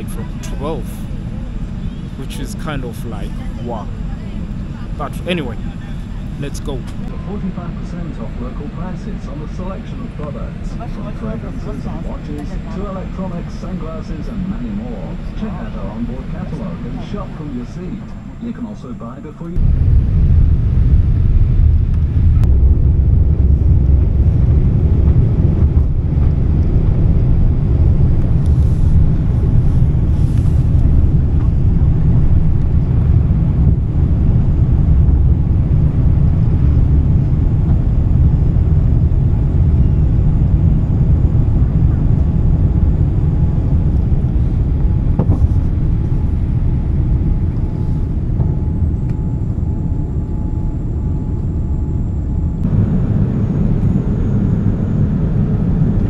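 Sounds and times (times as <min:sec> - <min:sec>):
jet engines rumbling in cabin: 0:00.0 - 0:56.0.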